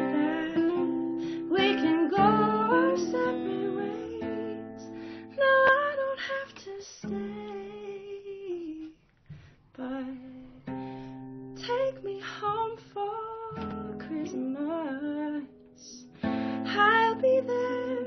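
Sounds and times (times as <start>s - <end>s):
woman singing slow song: 0.0s - 9.0s, 9.8s - 18.0s
guitar: 0.0s - 18.0s.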